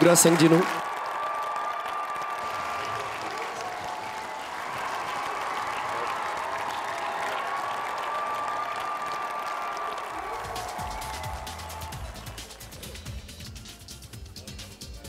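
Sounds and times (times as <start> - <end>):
audience applauding: 0.0 - 13.8.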